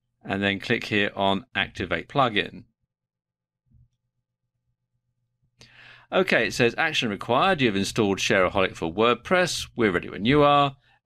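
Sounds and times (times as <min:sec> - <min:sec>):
short in-breath: 0:05.6 - 0:06.1.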